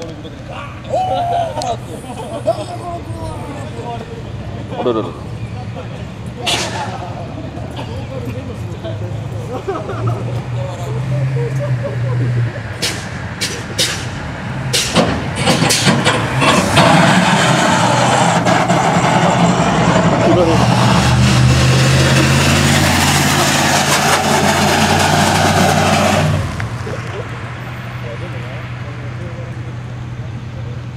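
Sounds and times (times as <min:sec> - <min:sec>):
racing car engines at full throttle: 0:00.0 - 0:30.9
sharp cracks: 0:12.8 - 0:19.0.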